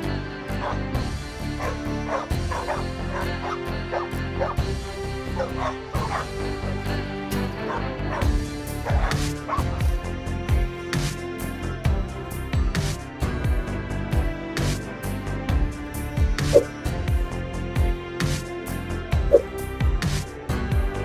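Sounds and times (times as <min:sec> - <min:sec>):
background music with steady beat: 0:00.0 - 0:21.0
dog barking and yipping: 0:00.6 - 0:00.8, 0:01.6 - 0:04.6, 0:05.4 - 0:06.3, 0:07.6 - 0:09.8.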